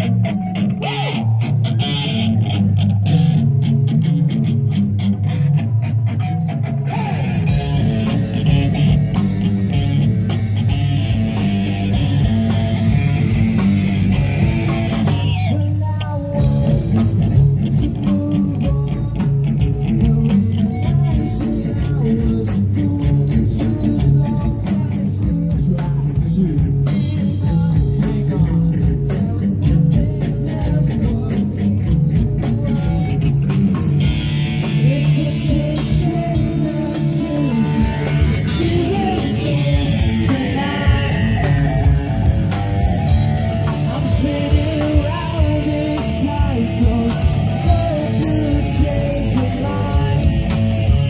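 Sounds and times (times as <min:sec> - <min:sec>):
rock band playing: 0:00.0 - 0:51.0
person singing into microphone: 0:14.6 - 0:51.0.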